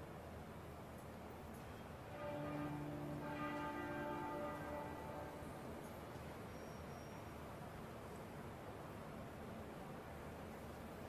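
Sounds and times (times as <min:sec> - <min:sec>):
large bell tolling: 0:02.1 - 0:06.5.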